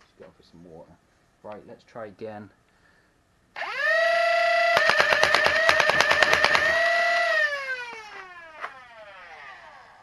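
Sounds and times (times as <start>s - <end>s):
rapid toy blaster shots: 3.6s - 8.3s
toy blaster motors whining: 3.6s - 10.0s.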